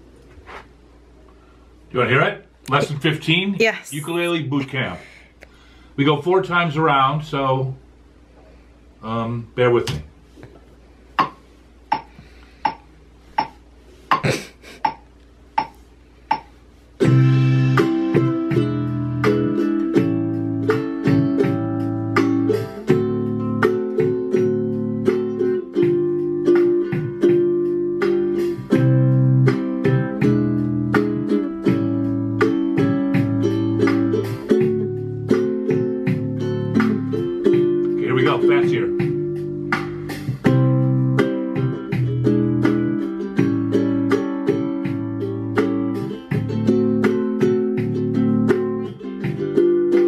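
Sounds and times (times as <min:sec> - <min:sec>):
metronome count-in clicks: 0:15.6 - 0:16.5
ukulele strumming chords: 0:16.4 - 0:50.0.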